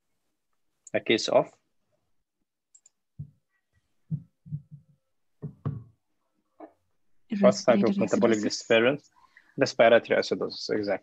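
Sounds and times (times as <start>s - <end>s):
muffled voice over online call: 7.4s - 11.0s.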